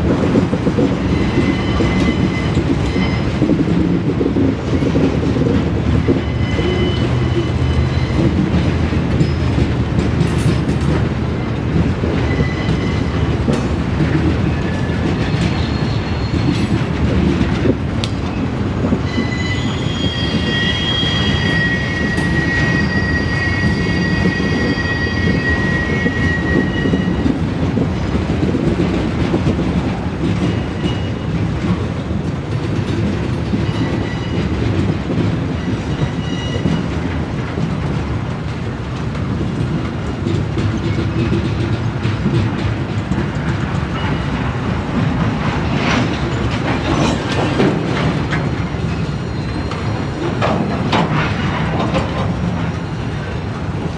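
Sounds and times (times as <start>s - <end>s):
train cars rumbling past: 0.0s - 53.9s
wheels clicking over rail joints: 0.1s - 20.5s, 21.1s - 53.9s
high wheel squeal: 1.0s - 3.5s, 5.9s - 8.6s, 12.1s - 13.3s, 14.6s - 16.6s, 19.0s - 27.3s, 33.5s - 34.6s, 35.6s - 36.9s, 48.8s - 51.5s.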